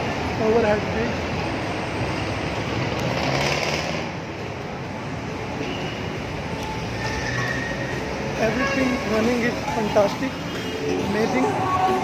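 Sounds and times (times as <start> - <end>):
city road traffic: 0.0 - 12.0.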